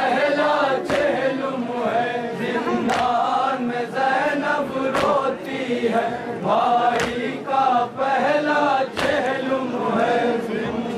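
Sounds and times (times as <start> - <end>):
men chanting a lament: 0.0 - 10.9
sharp slap: 2.8 - 3.2, 4.9 - 5.3, 6.9 - 7.3, 8.9 - 9.3.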